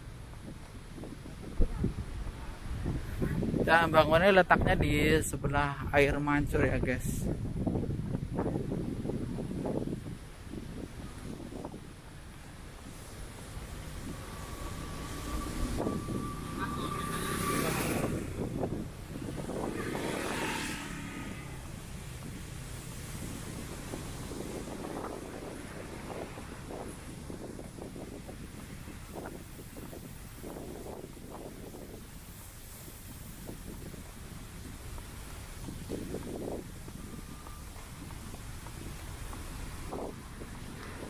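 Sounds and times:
outdoor background noise: 0:00.0 - 0:41.0
motor vehicle passing: 0:10.7 - 0:41.0.

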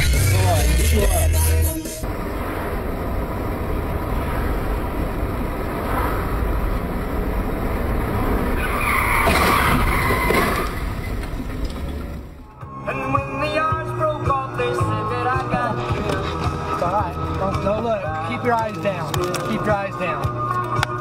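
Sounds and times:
car road and engine noise: 0:00.0 - 0:21.0
tyre screech: 0:08.5 - 0:12.0.

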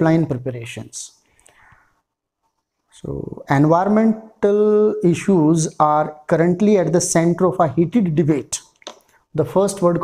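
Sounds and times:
man speaking: 0:00.0 - 0:01.2, 0:02.9 - 0:10.0.

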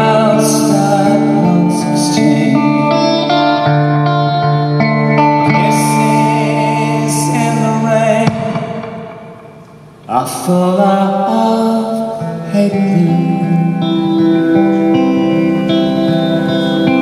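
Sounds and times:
man singing: 0:00.0 - 0:03.7, 0:05.2 - 0:09.1, 0:10.1 - 0:17.0
electric guitar playing chords: 0:00.0 - 0:10.1, 0:12.2 - 0:17.0.

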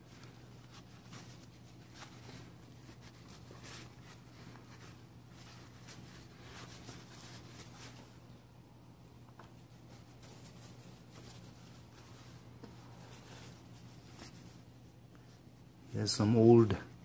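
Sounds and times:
low steady hum: 0:00.0 - 0:17.0
cloth rubbing plastic gear: 0:09.4 - 0:14.8.

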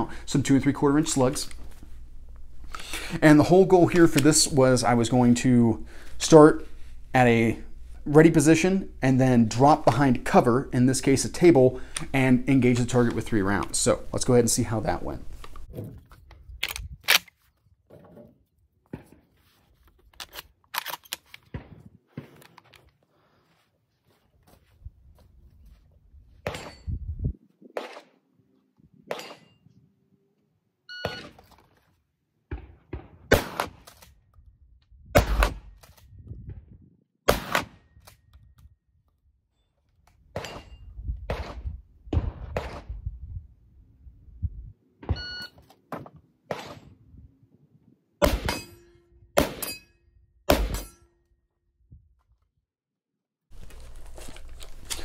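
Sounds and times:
shotgun shots: 0:32.5 - 0:33.9, 0:35.2 - 0:35.7, 0:37.3 - 0:37.9, 0:48.2 - 0:48.8, 0:49.4 - 0:49.8, 0:50.5 - 0:50.9
shot timer beep: 0:45.2 - 0:45.5.

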